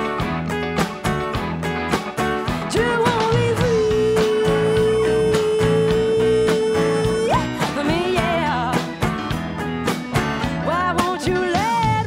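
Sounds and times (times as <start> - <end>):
live band playing blues: 0.0 - 12.0.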